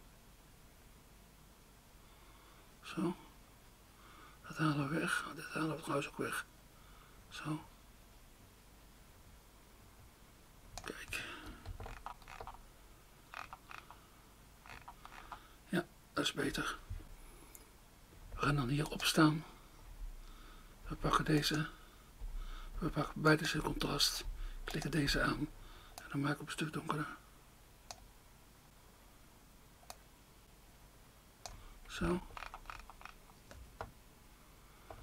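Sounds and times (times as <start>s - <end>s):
computer mouse click: 29.8s - 30.0s.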